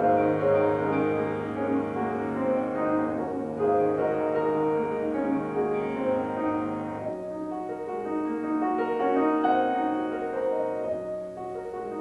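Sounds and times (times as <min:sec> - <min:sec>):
grand piano chords: 0:00.0 - 0:12.0.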